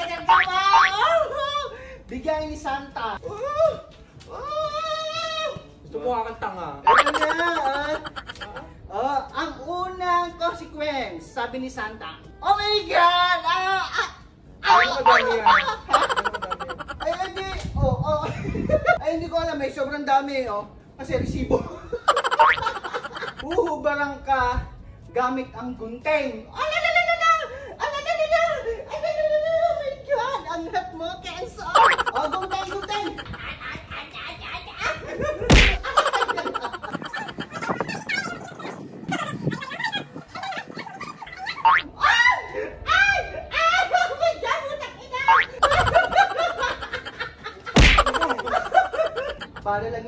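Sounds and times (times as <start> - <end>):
rising comedy sound effect: 6.9 - 7.4
man laughing: 6.9 - 8.7, 14.8 - 17.6, 22.1 - 23.6, 31.8 - 34.0, 34.9 - 41.8, 45.6 - 49.7.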